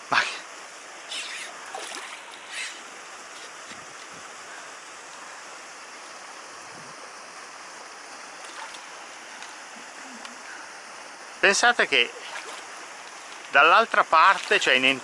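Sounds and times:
water flowing in a ditch: 0.0 - 15.0
fish splashing at surface: 1.4 - 2.8, 8.4 - 8.9, 12.2 - 13.5.

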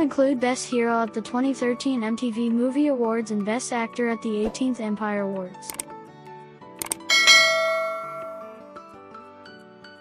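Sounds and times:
notification bell chime: 7.1 - 8.6.

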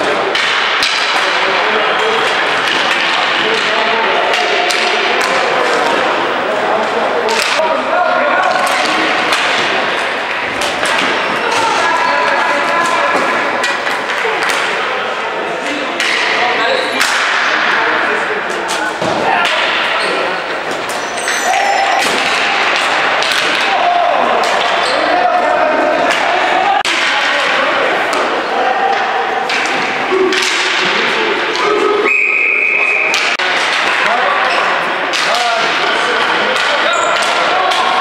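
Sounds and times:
hockey sticks cracking against ball: 0.0 - 6.2, 7.2 - 7.6, 8.4 - 14.9, 15.6 - 25.4, 26.0 - 31.9, 33.1 - 38.0
players shouting: 0.0 - 38.0
referee's whistle: 32.0 - 33.2.

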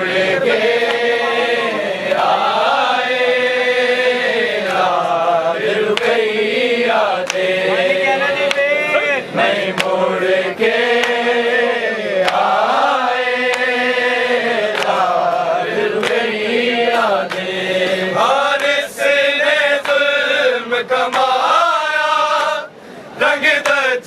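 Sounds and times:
men reciting a lament together: 0.0 - 24.0
hands slapping chests: 5.9 - 6.2, 7.2 - 7.5, 11.0 - 11.2, 14.7 - 15.0.

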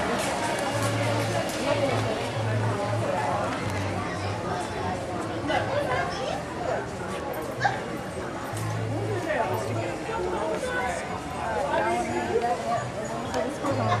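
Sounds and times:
people talking nearby: 0.0 - 14.0.

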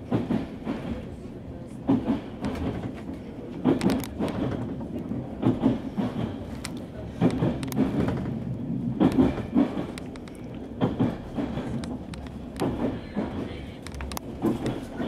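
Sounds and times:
train rumbling on rails: 0.0 - 15.0
wheel clacks over rail joints: 1.9 - 15.0.

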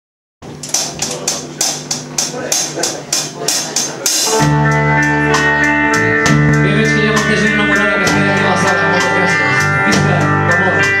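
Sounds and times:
live rock band playing: 0.4 - 11.0
held low guitar note: 4.2 - 11.0.

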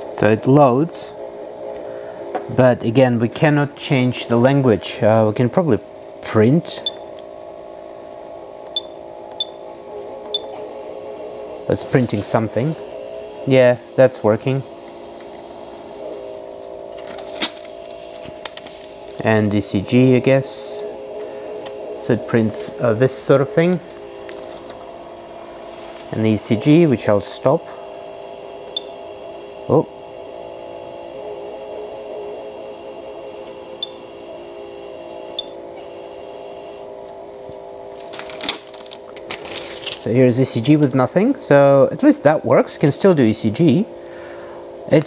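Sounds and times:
thermal printer whine: 0.0 - 45.0
paper crackling: 16.6 - 19.2, 37.1 - 40.2
paper strip tearing: 37.9 - 40.1.

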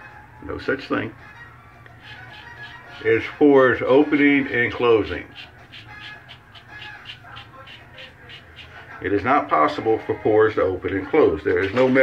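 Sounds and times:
razor scraping stubble: 2.0 - 3.4, 5.3 - 8.9.

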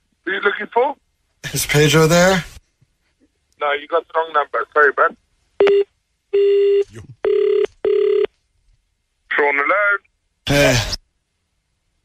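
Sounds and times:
steady telephone tone: 5.6 - 8.3.

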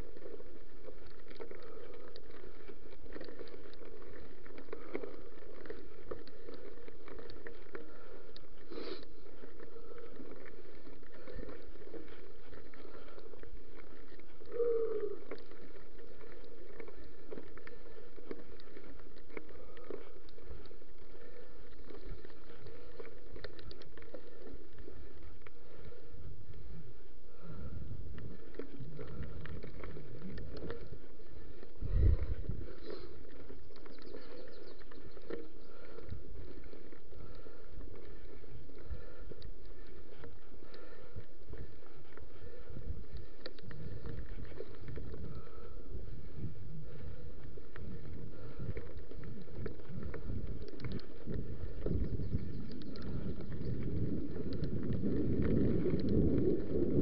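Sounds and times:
bike tyres rolling on gravel: 0.0 - 57.0
clicks and rattles from bike: 0.0 - 57.0.

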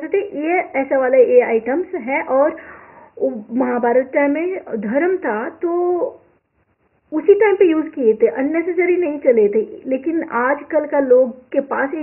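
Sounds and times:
woman talking: 0.0 - 2.6, 3.2 - 6.3, 7.1 - 12.0.

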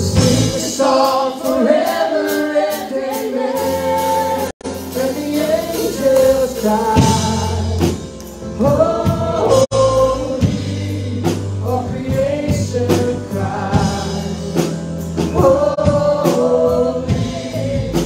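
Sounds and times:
drums: 0.0 - 18.0
keyboard: 0.0 - 18.0
several voices singing: 0.0 - 18.0.

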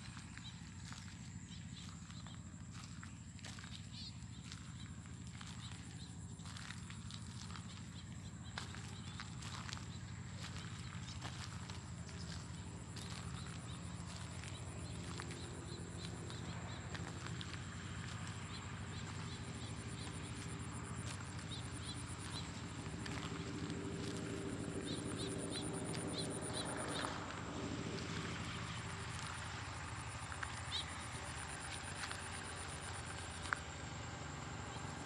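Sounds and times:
footsteps in grass and soil: 0.0 - 27.4.

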